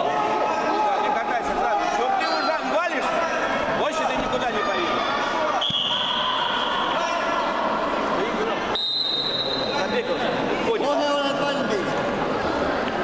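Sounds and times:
murmur of voices: 0.0 - 13.0
whistle blasts: 5.6 - 6.8, 8.7 - 9.8.

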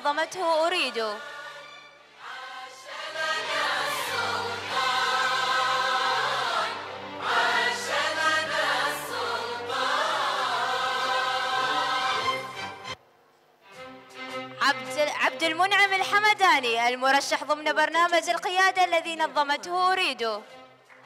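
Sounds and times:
group singing a song: 0.9 - 13.0.

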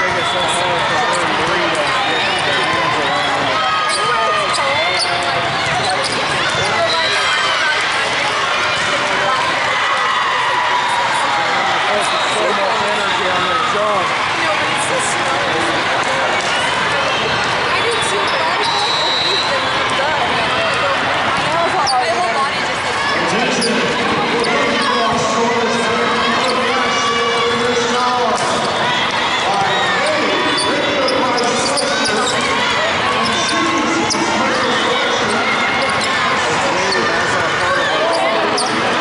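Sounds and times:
babble of voices: 0.0 - 39.0.

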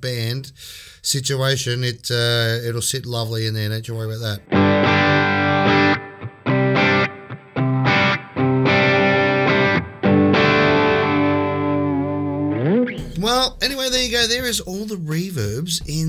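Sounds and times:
electric guitar chords with reverb: 4.4 - 13.6
man's wavering voice: 13.1 - 16.0.

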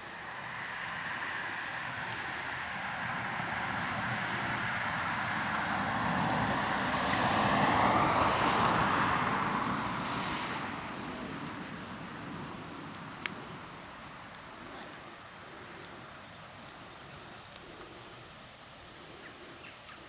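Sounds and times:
car passing by: 0.0 - 18.4.

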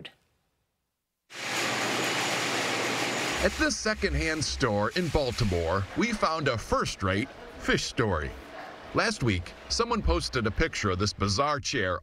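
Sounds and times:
large store room hiss: 1.3 - 10.6.

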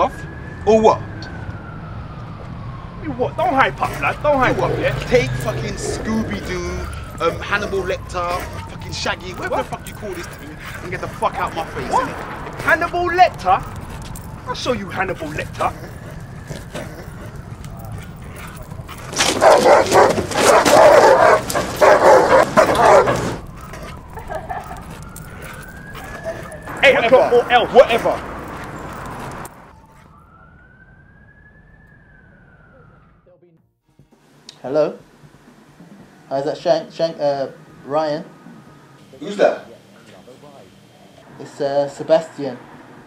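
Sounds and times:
siren wailing: 0.0 - 33.7, 35.5 - 43.0
dog barking loudly: 15.2 - 24.0.

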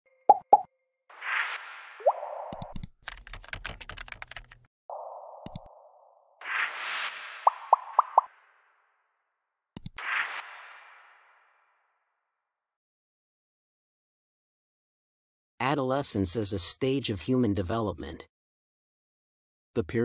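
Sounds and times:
mouse click: 2.5 - 2.9, 5.4 - 5.8, 9.8 - 10.0
keyboard typing clicks: 2.5 - 4.6, 5.4 - 5.7, 9.8 - 10.0.

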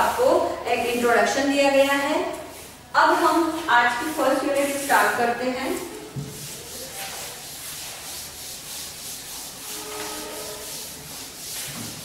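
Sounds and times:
blackboard being erased: 0.0 - 12.0.

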